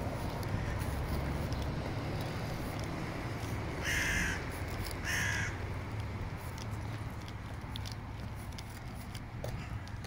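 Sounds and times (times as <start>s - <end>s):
bird harsh grating calls: 3.8s - 4.4s, 5.0s - 5.6s.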